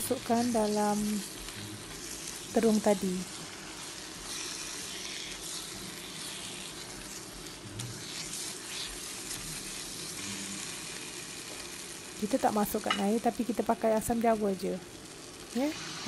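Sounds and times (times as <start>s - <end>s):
food sizzling in a wok: 0.0s - 16.0s
spatula stirring: 0.1s - 10.2s.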